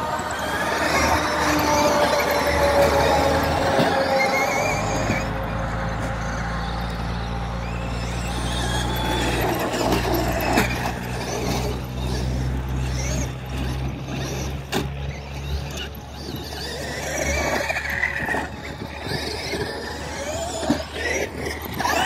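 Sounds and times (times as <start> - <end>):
electric motors whining: 0.0 - 22.0
toy trucks knocking on dirt: 7.6 - 22.0.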